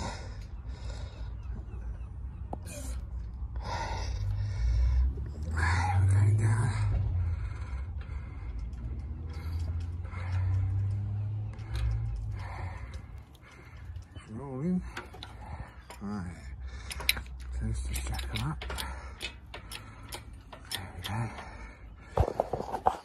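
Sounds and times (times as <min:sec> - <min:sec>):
steady low rumble: 0:00.0 - 0:22.7
man breathing hard and gasping: 0:07.0 - 0:14.2.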